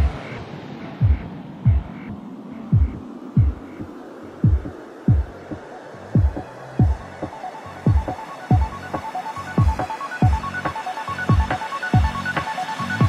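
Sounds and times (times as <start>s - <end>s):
filtered dubstep track: 0.0s - 13.0s
deep bass thumps: 1.0s - 2.0s, 2.7s - 3.7s, 4.4s - 5.5s, 6.2s - 7.2s.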